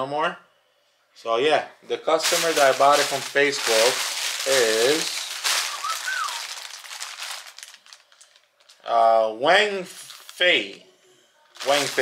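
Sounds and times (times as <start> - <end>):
plastic bag crinkling: 2.2 - 8.9, 10.0 - 10.4, 11.5 - 12.0
rising and falling whistle: 5.7 - 6.4.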